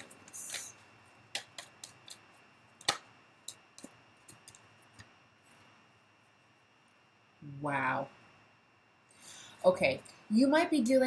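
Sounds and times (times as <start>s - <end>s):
cards being shuffled: 0.0s - 5.1s.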